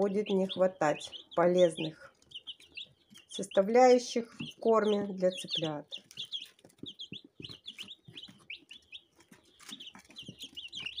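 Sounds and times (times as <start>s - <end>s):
chicks peeping: 0.0s - 11.0s.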